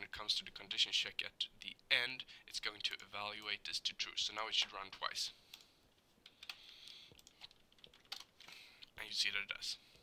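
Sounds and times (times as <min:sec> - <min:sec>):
computer keyboard key presses: 0:06.3 - 0:08.3.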